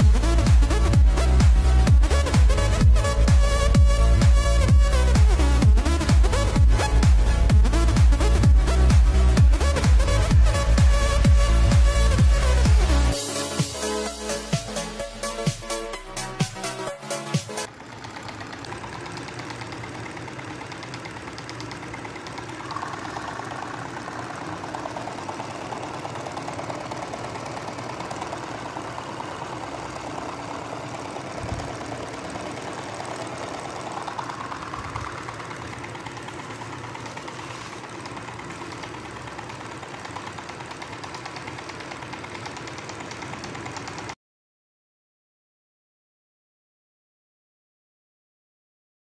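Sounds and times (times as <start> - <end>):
small motor rattling and whirring: 0.0 - 44.2.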